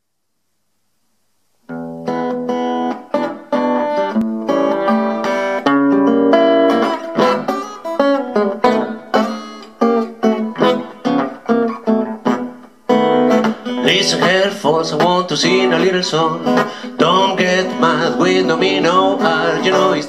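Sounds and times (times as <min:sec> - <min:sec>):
acoustic guitar blues: 0:01.7 - 0:20.0.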